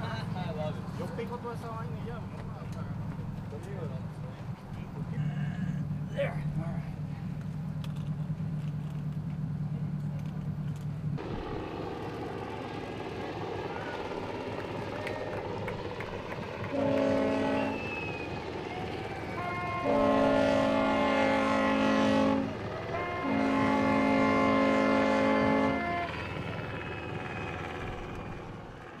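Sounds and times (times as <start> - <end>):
wind: 0.0 - 29.0
sea noise: 11.2 - 29.0
boat horn blasts: 16.7 - 18.0, 18.7 - 26.8.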